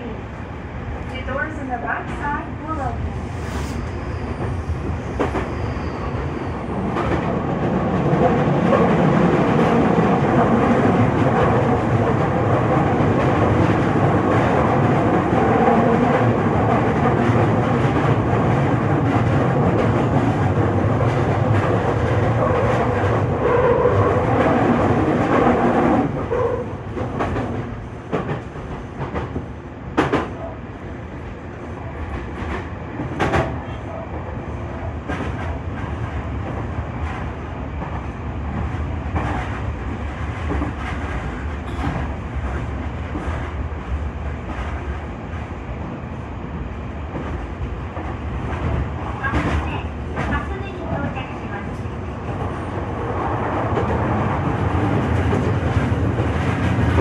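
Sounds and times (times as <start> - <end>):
train rolling and motor noise: 0.0 - 57.0.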